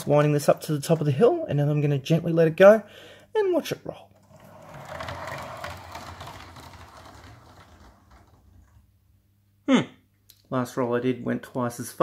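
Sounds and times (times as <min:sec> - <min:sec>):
toy train car rattling on track: 0:04.2 - 0:08.8.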